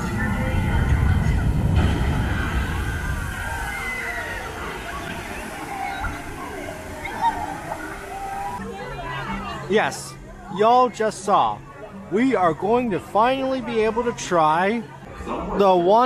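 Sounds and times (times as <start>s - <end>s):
boat splashing into water: 0.0s - 8.6s.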